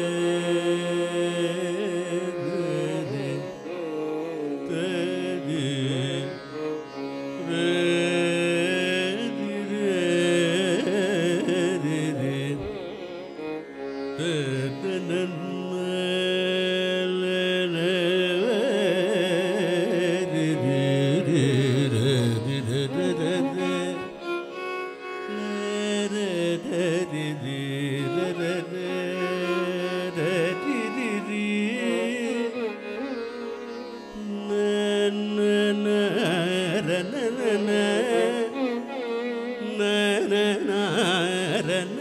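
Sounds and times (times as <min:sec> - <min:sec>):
man singing: 0:00.0 - 0:42.0
violin: 0:00.0 - 0:42.0.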